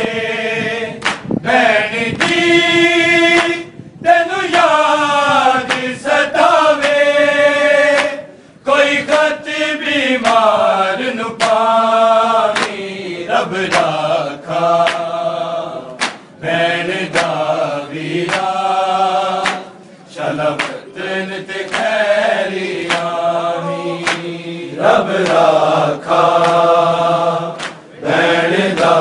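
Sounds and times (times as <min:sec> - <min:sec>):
men chanting in unison: 0:00.0 - 0:29.0
chest-beating slaps: 0:01.0 - 0:01.3, 0:05.7 - 0:05.9, 0:11.4 - 0:11.6, 0:12.5 - 0:12.8, 0:15.9 - 0:16.4, 0:17.1 - 0:17.4, 0:18.2 - 0:18.5, 0:19.4 - 0:19.8, 0:20.5 - 0:20.9, 0:21.6 - 0:22.0, 0:24.0 - 0:24.3, 0:27.6 - 0:27.9.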